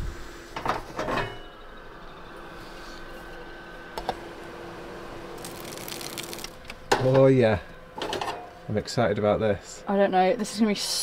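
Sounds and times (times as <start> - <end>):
cookware clatter: 8.0 - 8.5.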